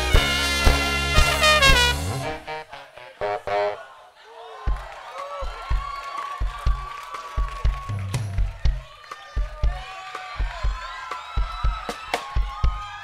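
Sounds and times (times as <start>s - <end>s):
live band with saxophones: 0.0s - 3.8s
kick drum beat: 4.7s - 13.0s.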